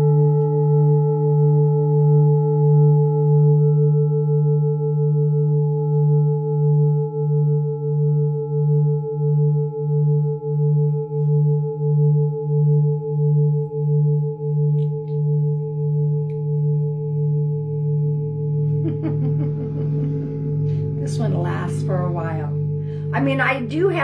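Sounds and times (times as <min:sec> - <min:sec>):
singing bowl ringing: 0:00.0 - 0:24.0.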